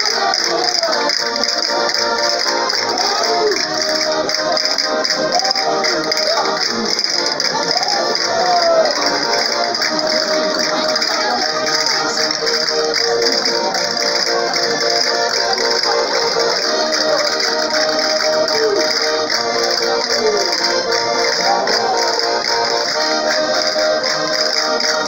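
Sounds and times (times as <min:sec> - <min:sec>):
live band dance music: 0:00.0 - 0:25.0.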